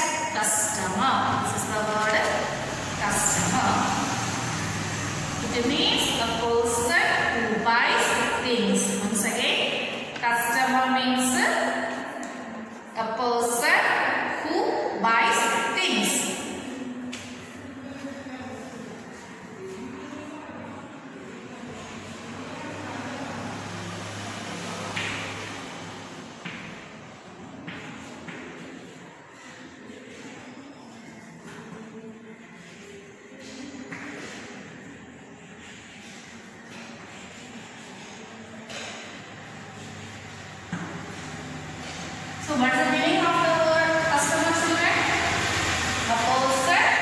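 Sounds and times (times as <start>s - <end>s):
chalk scratching on blackboard: 35.6s - 38.3s.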